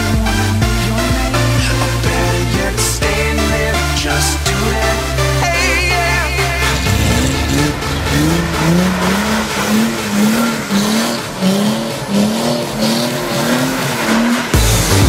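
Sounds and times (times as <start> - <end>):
car engine revving: 0.0 - 15.0.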